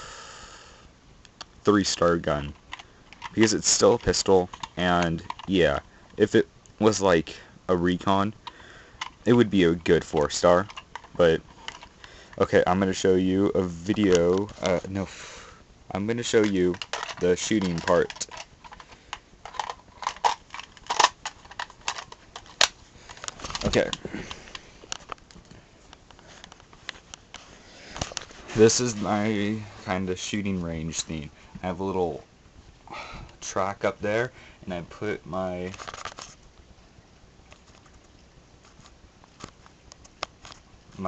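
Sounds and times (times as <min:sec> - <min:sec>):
objects being handled: 0:02.4 - 0:06.2, 0:08.3 - 0:13.0, 0:13.7 - 0:15.0, 0:16.2 - 0:31.1, 0:35.6 - 0:36.4.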